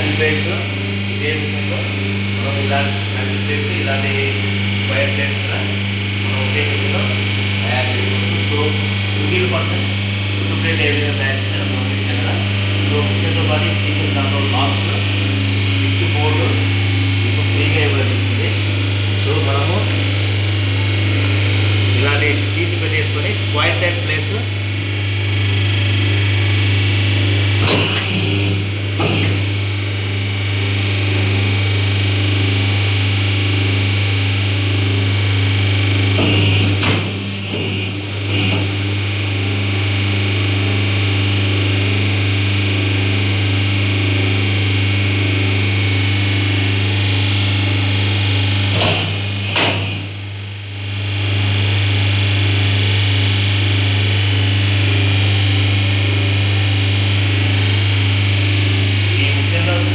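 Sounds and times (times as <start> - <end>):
machine electric hum: 0.0 - 59.9.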